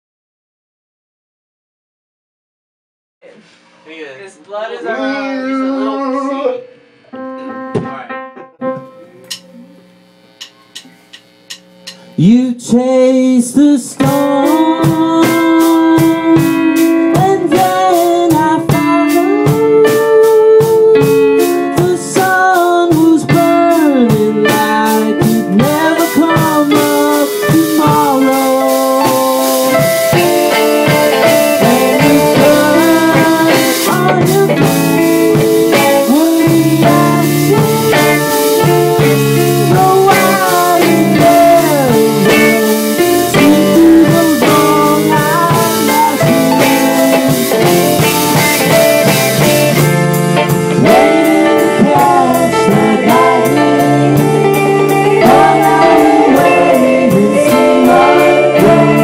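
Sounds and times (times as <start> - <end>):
amplifier hum: 8.6 - 12.6
rock band playing loudly: 13.9 - 59.0.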